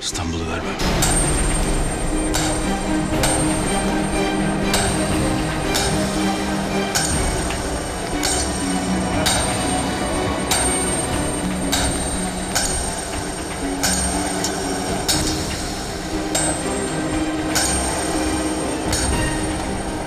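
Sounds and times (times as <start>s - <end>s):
low held notes: 0.0s - 20.0s
sharp metallic hit: 0.8s - 20.0s
thin high ringing tone: 0.8s - 20.0s.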